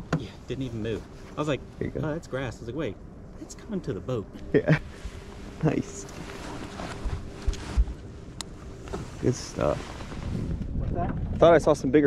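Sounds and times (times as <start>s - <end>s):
faint steady hum: 0.0s - 10.8s
wind buffeting microphone: 6.9s - 12.0s.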